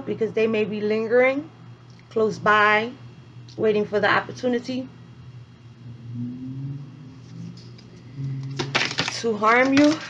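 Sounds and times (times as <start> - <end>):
steady low hum: 0.0 - 10.0
woman humming: 5.8 - 8.7.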